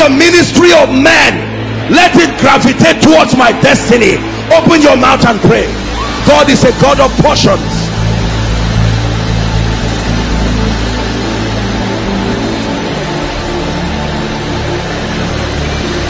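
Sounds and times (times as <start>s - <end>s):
soft keyboard background music: 0.0s - 16.0s.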